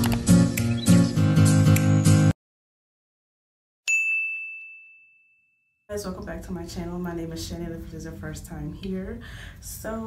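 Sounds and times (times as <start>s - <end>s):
notification bell ding: 3.9s - 5.8s.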